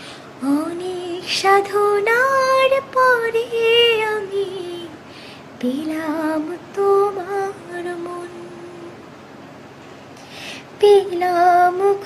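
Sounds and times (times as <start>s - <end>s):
woman singing unaccompanied: 0.4s - 5.0s, 5.6s - 9.0s, 10.7s - 12.0s.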